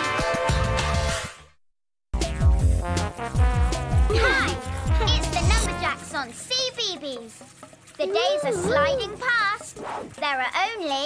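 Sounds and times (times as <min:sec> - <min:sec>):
cartoon character wordless voice: 0:04.1 - 0:06.1, 0:08.0 - 0:09.6.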